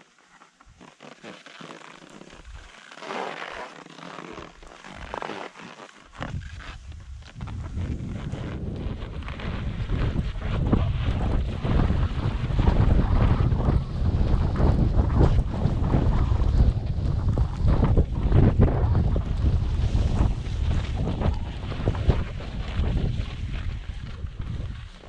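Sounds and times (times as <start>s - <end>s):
skis scraping on snow: 0.0s - 25.0s
wind buffeting microphone: 6.2s - 25.0s.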